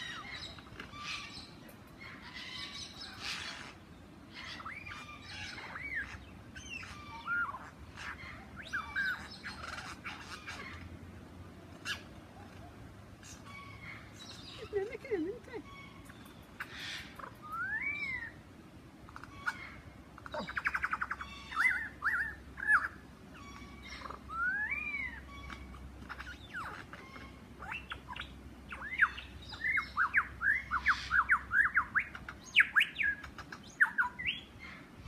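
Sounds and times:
lyrebird singing whistled phrases: 17.4s - 18.3s.

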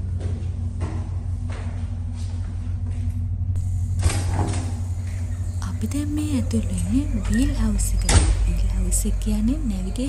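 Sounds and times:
ship machinery humming: 0.0s - 10.0s
door opening rush of noise: 3.6s - 10.0s.

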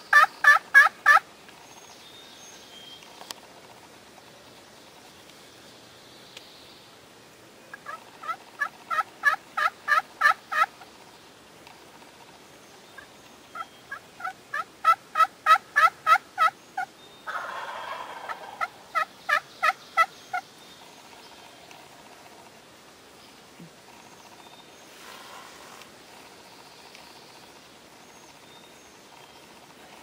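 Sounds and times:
turkey yelping: 0.1s - 1.2s, 7.7s - 10.7s, 13.0s - 16.5s, 17.3s - 20.1s.

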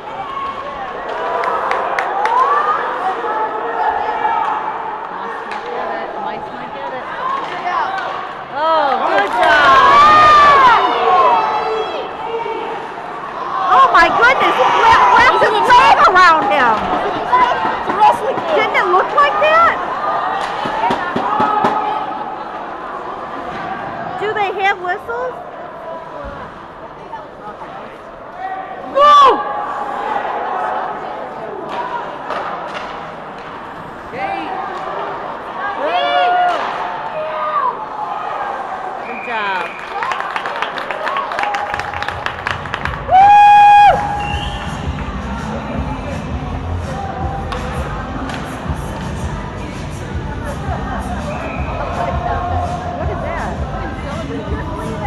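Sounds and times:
crowd murmur: 0.0s - 39.2s, 43.8s - 55.0s
spectators yelling: 7.3s - 24.2s, 28.4s - 32.4s, 34.1s - 40.2s, 42.9s - 45.5s
hum of voices: 43.8s - 55.0s.

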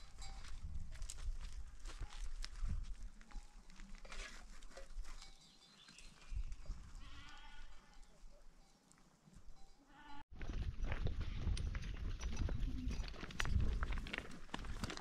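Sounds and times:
footsteps crunching on loose stones: 0.0s - 8.0s, 10.4s - 15.0s.

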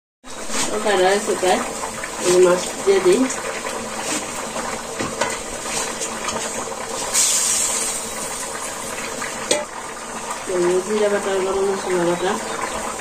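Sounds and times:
curry bubbling and sizzling: 0.2s - 13.0s.

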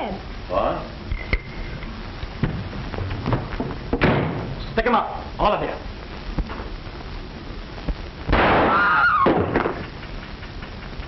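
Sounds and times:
old soundtrack hiss: 0.0s - 11.0s.

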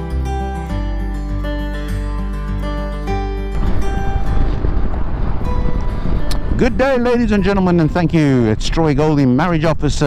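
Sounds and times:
wind rushing over microphone: 3.5s - 10.0s.

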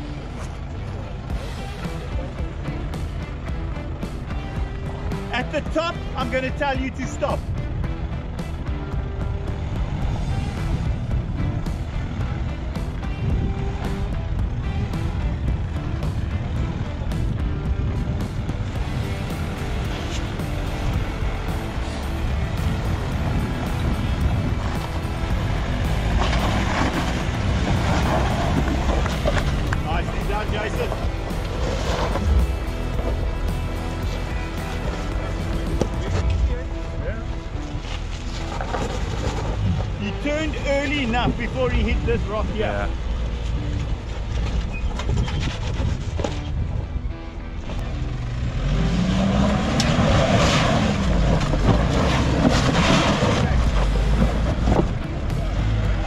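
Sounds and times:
engine running at low revs: 0.0s - 56.0s
music: 0.0s - 56.0s.

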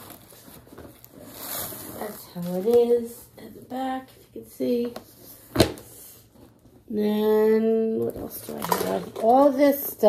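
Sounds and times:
handbag rustling and scraping: 0.0s - 2.9s.

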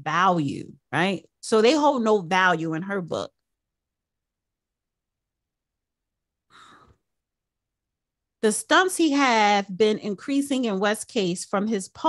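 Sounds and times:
woman speaking: 0.0s - 3.4s, 8.4s - 12.0s.

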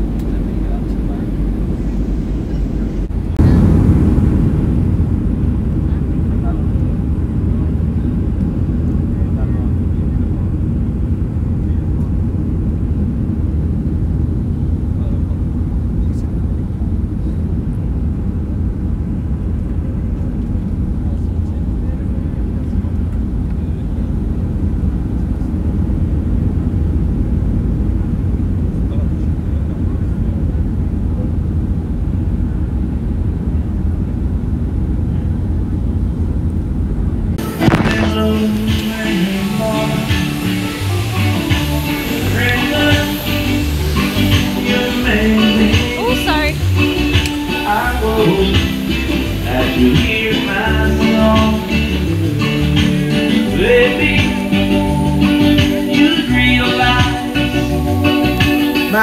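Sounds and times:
jet cabin engine rumble: 0.0s - 59.0s.

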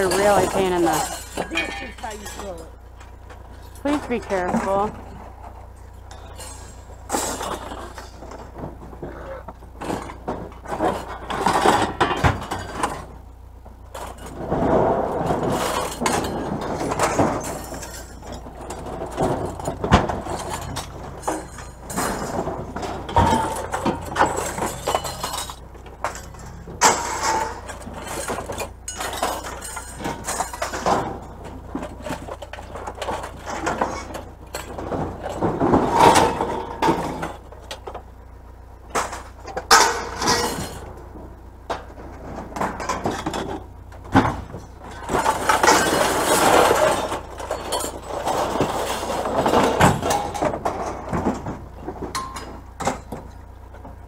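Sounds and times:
scrap metal clanking and rattling: 0.0s - 54.0s.

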